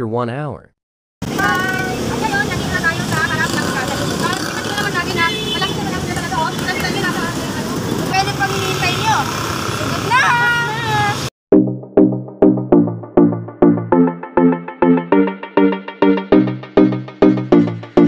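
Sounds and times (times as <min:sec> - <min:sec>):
motorcycles in traffic: 0:01.2 - 0:11.3.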